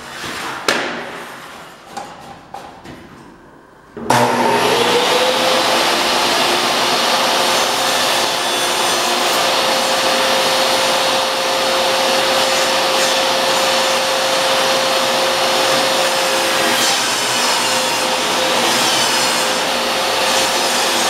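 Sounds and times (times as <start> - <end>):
table saw cutting a plank: 4.1 - 21.0.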